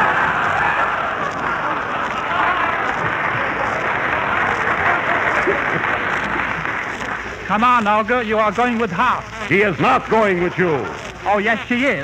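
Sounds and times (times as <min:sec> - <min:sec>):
audience applauding: 0:00.0 - 0:07.5.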